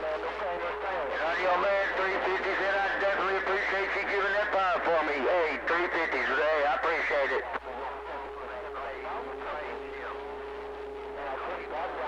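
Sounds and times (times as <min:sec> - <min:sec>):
voice over radio speaker: 0:00.0 - 0:10.4, 0:11.0 - 0:12.0
radio static: 0:00.0 - 0:12.0.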